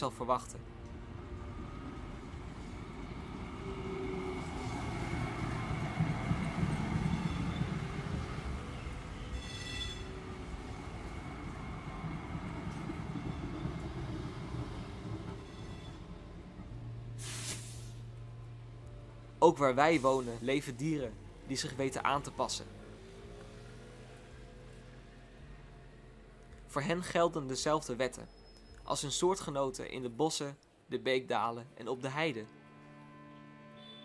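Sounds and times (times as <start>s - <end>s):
tram wheels rumbling on rails: 0.6s - 17.2s
faint squealing: 9.2s - 10.4s.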